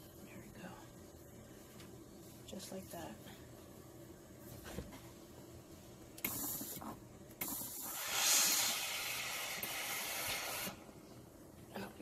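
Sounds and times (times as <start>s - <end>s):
steam iron hissing: 6.2s - 10.9s.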